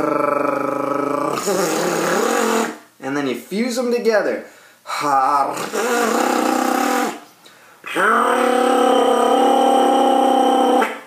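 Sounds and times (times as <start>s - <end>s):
flutter-tongued mouthpiece buzz: 1.3s - 2.8s, 5.6s - 7.2s.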